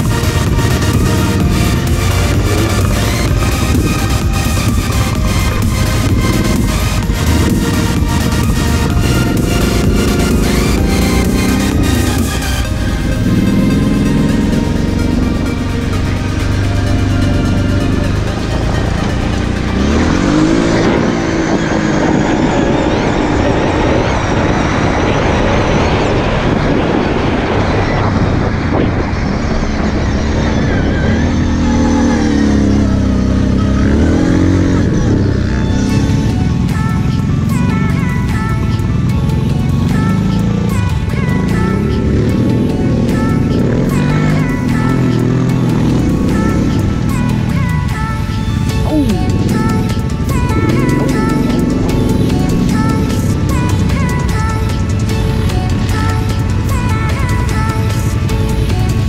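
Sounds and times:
electronic music with steady beat: 0.0 - 25.0, 32.2 - 59.0
quad bike engine revving: 0.0 - 59.0.

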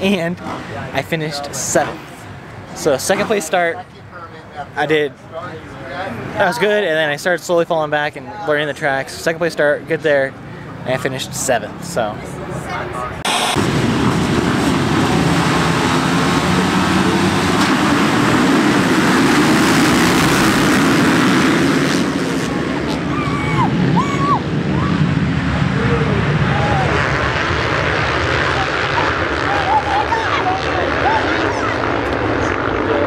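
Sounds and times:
motocross bikes accelerating: 13.5 - 33.0
onlookers shouting: 23.0 - 27.3.

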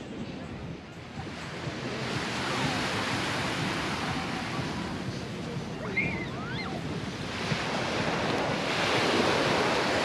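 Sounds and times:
waves washing onto sand: 1.0 - 10.0.

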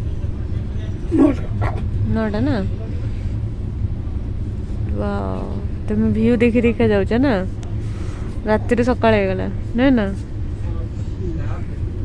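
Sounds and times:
train rumble inside carriage: 0.0 - 12.0
short high vocal sound: 1.1 - 1.8.

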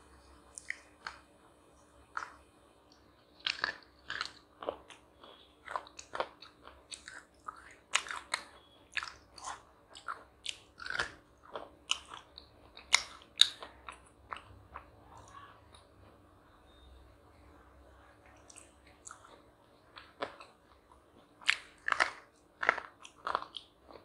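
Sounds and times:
crunchy chocolate chewing: 3.4 - 15.8, 18.3 - 24.0.

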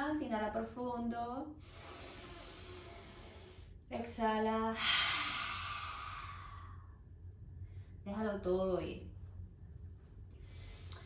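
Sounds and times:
woman's deep exhale: 1.6 - 3.8, 4.8 - 7.0.

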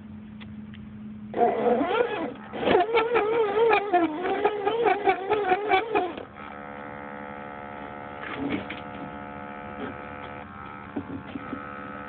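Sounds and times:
electric motor whine: 1.3 - 12.0.

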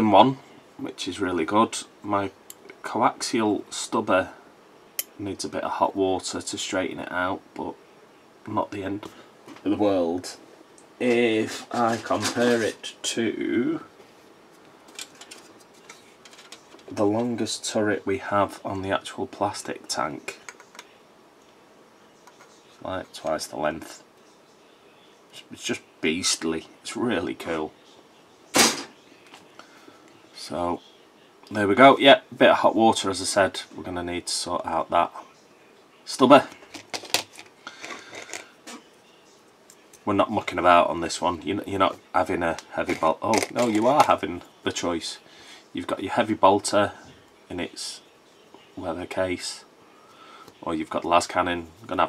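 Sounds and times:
plastic parts clicking and rattling: 14.9 - 16.9, 36.7 - 38.5.

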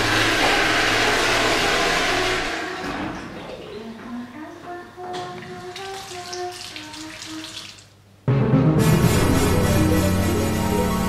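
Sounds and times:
electric hand dryer running: 0.0 - 3.0.

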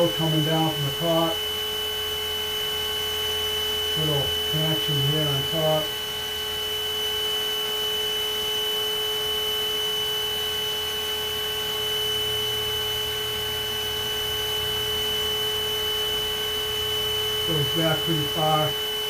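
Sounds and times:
steady tonal hum: 0.0 - 19.0.

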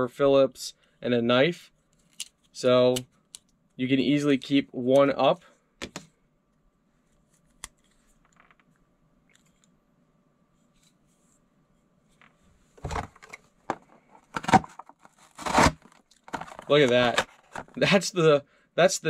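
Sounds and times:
cardboard packaging scraping and rustling: 12.8 - 17.8.

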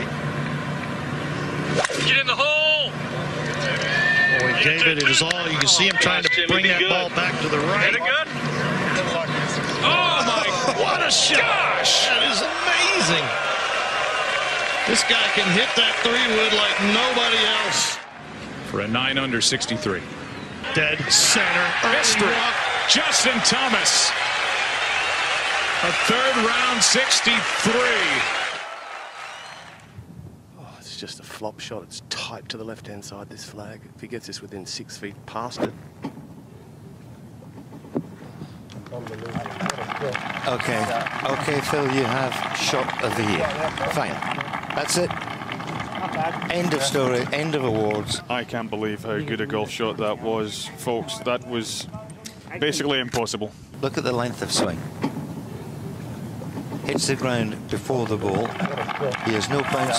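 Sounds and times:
crowd applause: 9.8 - 18.2, 20.6 - 29.9, 38.9 - 48.3, 56.9 - 59.9
background noise: 29.4 - 59.9.

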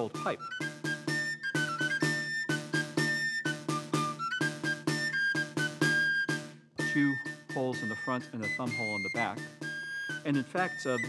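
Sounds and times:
pipe melody: 0.0 - 11.0
snare drum beating: 0.0 - 11.0.

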